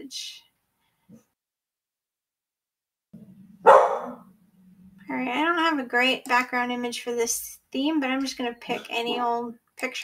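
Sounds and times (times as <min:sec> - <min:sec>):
dog barking: 0:03.6 - 0:04.3.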